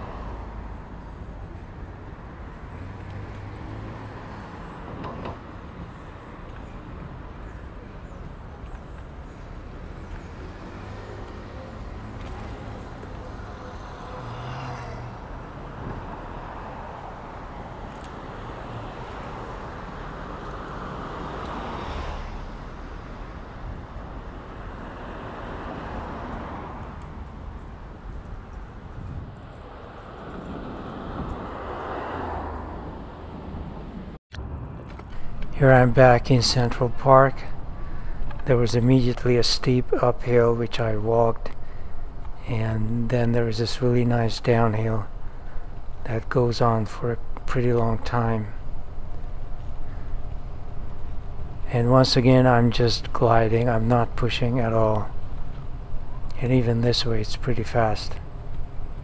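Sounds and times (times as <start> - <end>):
cars passing: 0.0 - 59.0
low rumble of road noise: 0.0 - 59.0.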